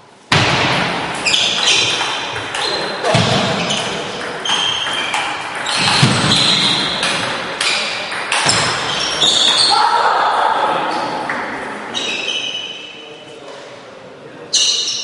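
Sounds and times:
table tennis ball hitting rackets: 0.3s - 9.7s.

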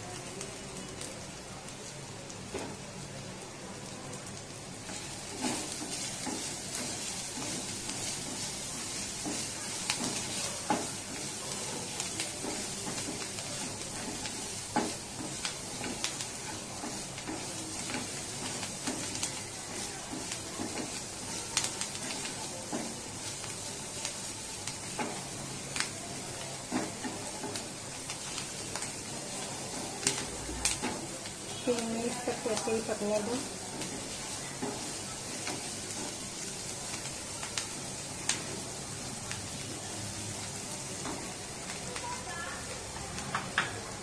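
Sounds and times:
chillies sizzling in hot oil: 0.0s - 44.0s.

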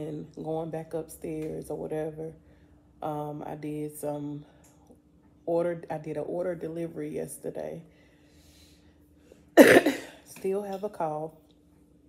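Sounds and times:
woman coughing: 9.6s - 10.3s.

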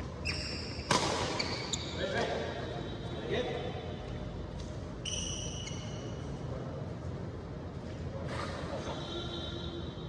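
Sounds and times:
shoes squeaking on court: 0.0s - 2.4s, 4.9s - 6.4s
racket hitting shuttlecock: 0.8s - 1.4s
voices: 8.1s - 10.0s.

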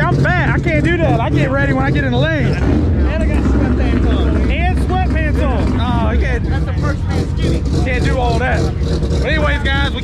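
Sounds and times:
low rumble of vehicle noise: 0.0s - 10.0s
people talking: 0.0s - 10.0s.

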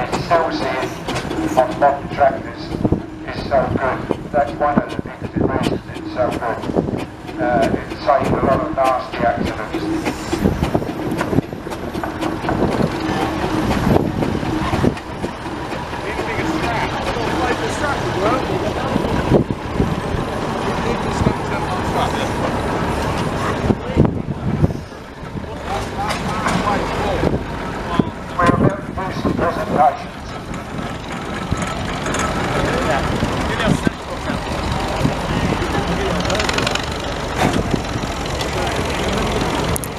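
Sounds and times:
indistinct voices: 0.0s - 39.9s
steam road roller running: 0.0s - 39.9s.

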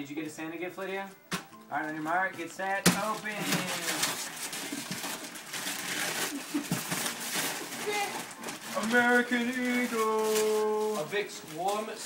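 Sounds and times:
wrapping paper tearing and crumpling: 2.8s - 12.0s.

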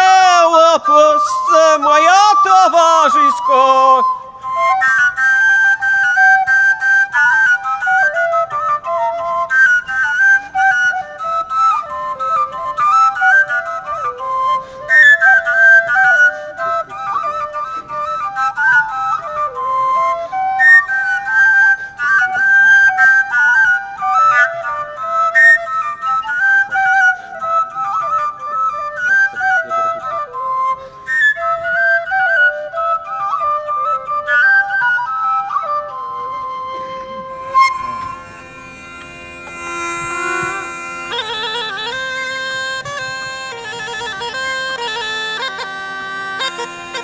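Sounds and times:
wooden flutes playing folk melody: 0.0s - 47.0s.

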